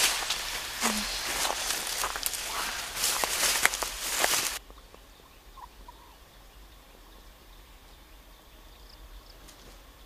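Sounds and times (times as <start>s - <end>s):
loud rustling crackling: 0.0s - 4.6s
duck calls: 0.2s - 4.6s.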